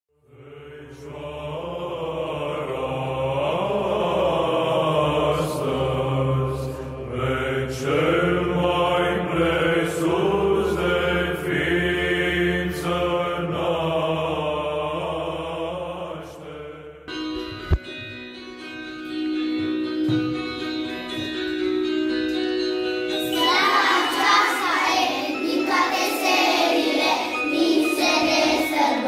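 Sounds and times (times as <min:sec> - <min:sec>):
voices chanting slow melody: 0:00.3 - 0:17.1, 0:23.1 - 0:29.0.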